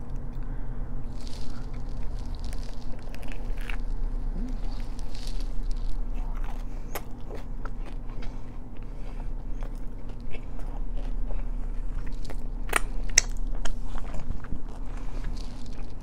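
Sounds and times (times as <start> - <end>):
close chewing with crunches: 0.0 - 16.0.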